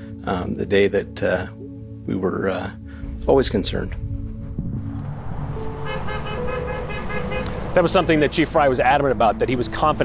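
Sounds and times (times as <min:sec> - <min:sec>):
vehicle low rumble: 0:03.2 - 0:10.0
pulsing horn-like tone: 0:05.3 - 0:07.7.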